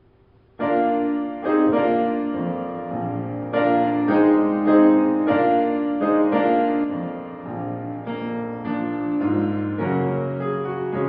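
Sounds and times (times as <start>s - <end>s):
grand piano playing chords: 0.0s - 11.0s.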